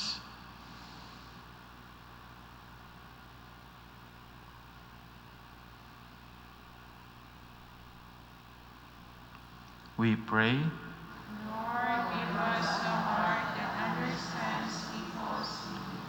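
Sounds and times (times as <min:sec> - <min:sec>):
faint low hum with hiss: 0:00.0 - 0:16.0.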